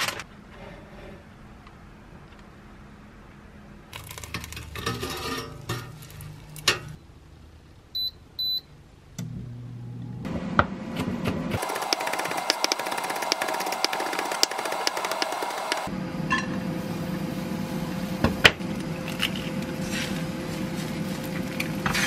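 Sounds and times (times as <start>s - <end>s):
fan hissing: 11.6s - 15.9s.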